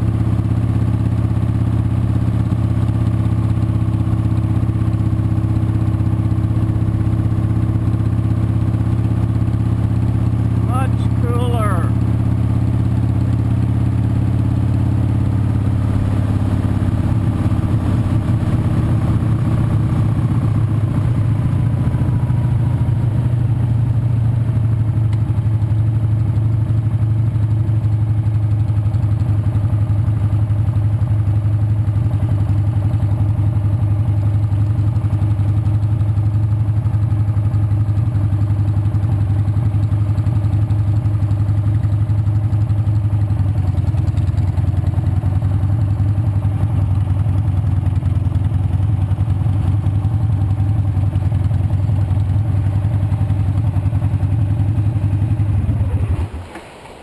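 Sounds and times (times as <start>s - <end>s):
motorcycle engine running: 0.0s - 56.4s.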